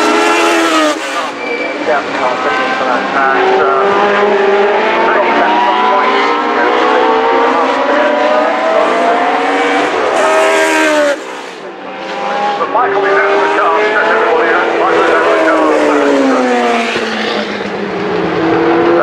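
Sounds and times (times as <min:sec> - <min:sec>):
racing cars passing at high revs: 0:00.0 - 0:19.0.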